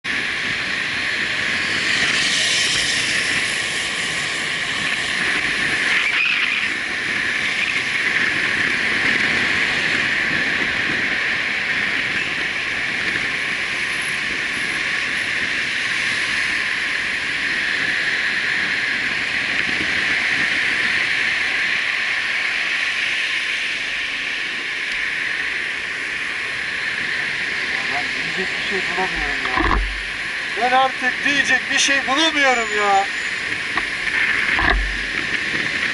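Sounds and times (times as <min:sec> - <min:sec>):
wind rushing on helmet: 0:00.1 - 0:31.2, 0:33.2 - 0:35.9
motorcycle and traffic: 0:00.1 - 0:35.9.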